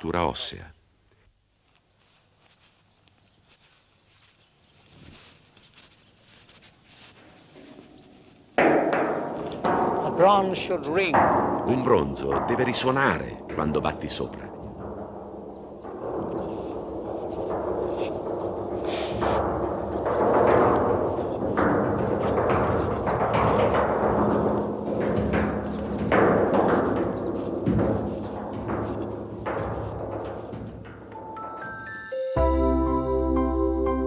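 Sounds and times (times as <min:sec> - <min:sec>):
deep booming percussion strikes: 0:08.6 - 0:34.0.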